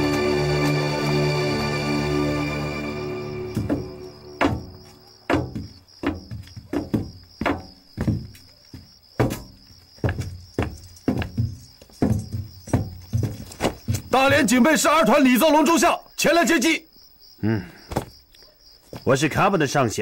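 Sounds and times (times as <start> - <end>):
held background music tone: 0.0 - 6.2
heavy boot footsteps: 3.3 - 14.6.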